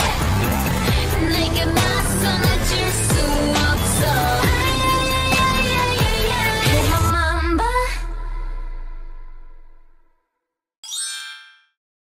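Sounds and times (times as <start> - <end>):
bright chime sound effect: 10.8 - 11.8.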